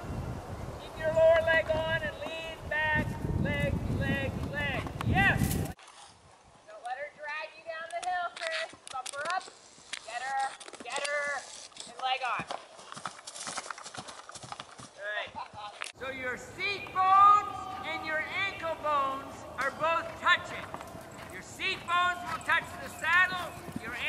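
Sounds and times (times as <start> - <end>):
horse hoofbeats on grass: 11.9 - 24.0.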